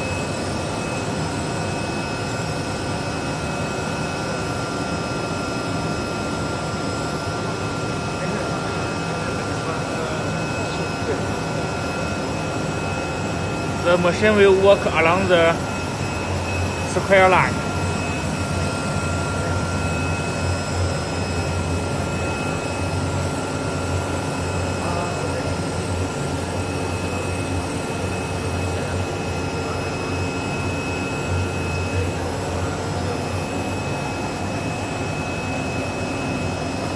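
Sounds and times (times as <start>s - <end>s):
cutting machine running: 0.0s - 36.9s
faint high whine: 0.0s - 36.9s.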